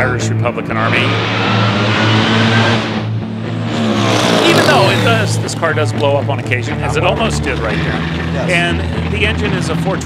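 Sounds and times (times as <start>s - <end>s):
dragster engine at full throttle: 0.6s - 10.0s.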